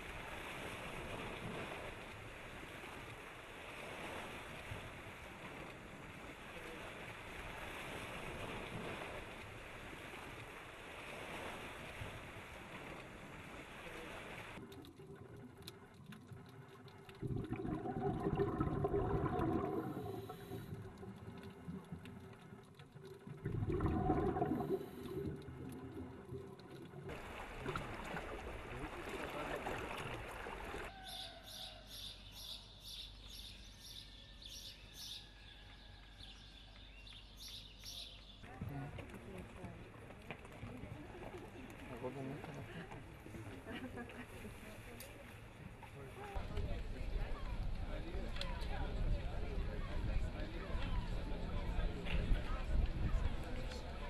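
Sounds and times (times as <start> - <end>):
bird chirping: 31.0 - 38.4.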